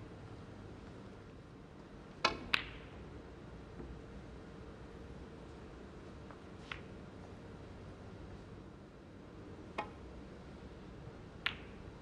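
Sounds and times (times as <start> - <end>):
snooker balls clicking: 2.2 - 3.0, 6.6 - 6.9, 11.4 - 11.9.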